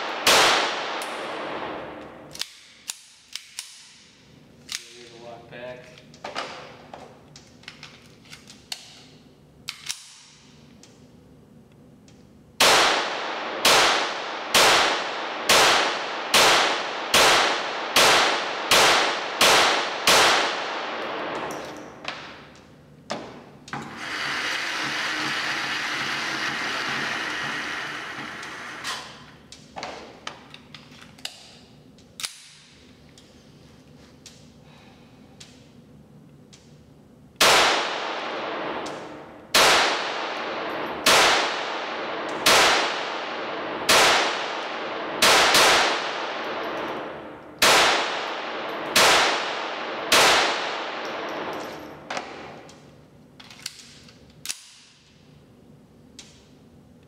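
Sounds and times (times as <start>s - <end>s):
pistol shots in indoor range: 0.0s - 5.2s, 6.2s - 24.0s, 25.2s - 30.5s, 31.1s - 33.0s, 35.4s - 57.0s.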